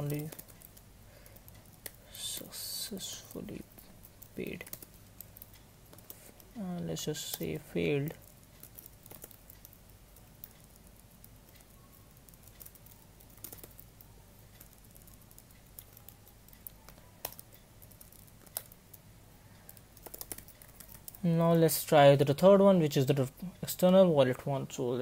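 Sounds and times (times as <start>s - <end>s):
faint keyboard typing: 0.0s - 25.0s.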